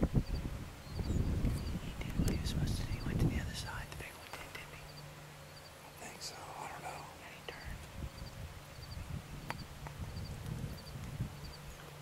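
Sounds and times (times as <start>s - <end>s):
low microphone rumble: 0.0s - 5.2s, 5.8s - 12.0s
hushed whispering: 1.8s - 5.0s, 5.8s - 7.8s.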